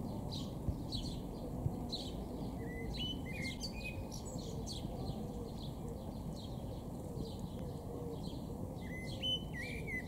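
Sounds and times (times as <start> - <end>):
songbirds chirping: 0.0 - 10.0.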